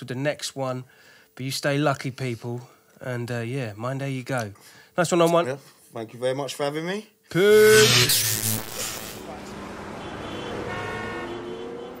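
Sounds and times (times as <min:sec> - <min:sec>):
sustained electronic tone: 0:07.5 - 0:11.9.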